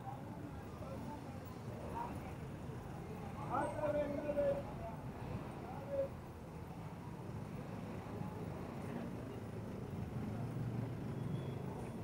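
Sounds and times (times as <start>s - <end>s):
busy street ambience: 0.0s - 12.0s.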